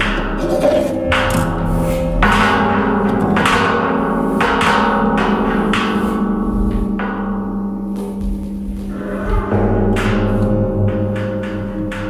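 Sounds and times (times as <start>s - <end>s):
low metallic drone: 0.0s - 12.0s.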